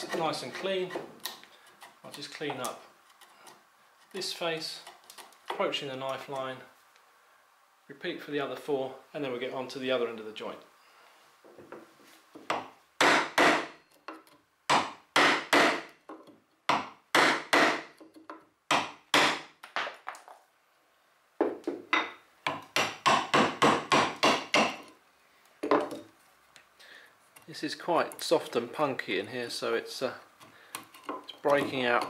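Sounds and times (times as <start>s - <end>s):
wood chisel chopping into wood: 12.5s - 13.7s, 14.7s - 15.9s, 16.7s - 18.0s, 18.7s - 19.9s, 21.7s - 24.9s.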